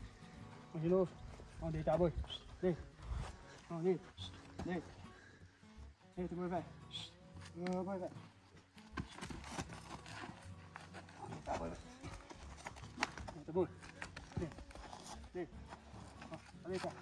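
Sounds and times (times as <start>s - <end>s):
hooves scraping on dry dirt: 0.0s - 17.0s.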